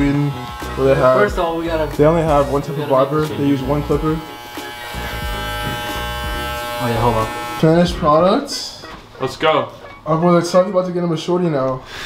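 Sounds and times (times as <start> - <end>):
electric hair clippers buzzing: 0.0 - 8.2.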